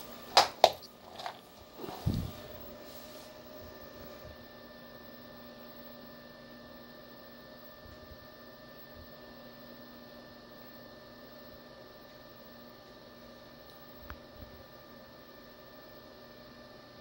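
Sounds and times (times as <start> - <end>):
medical equipment humming and hissing: 0.0 - 17.0.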